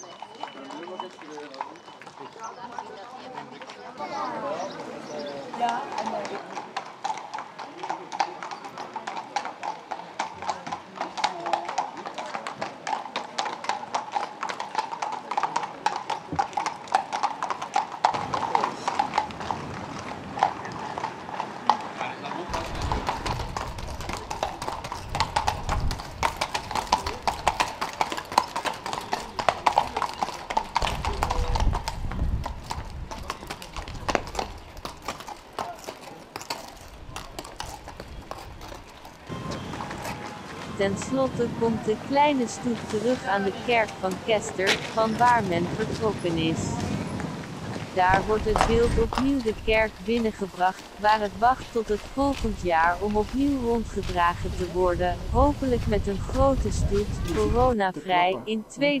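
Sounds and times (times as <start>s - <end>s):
horse hooves clip-clopping on pavement: 0.0s - 58.0s
people talking: 40.7s - 46.9s, 48.0s - 59.0s.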